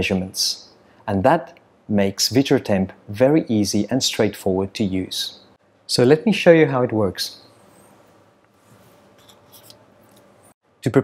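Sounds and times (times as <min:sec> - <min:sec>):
low room hum: 0:00.0 - 0:11.0
lab equipment clicks and rustles: 0:07.8 - 0:10.5.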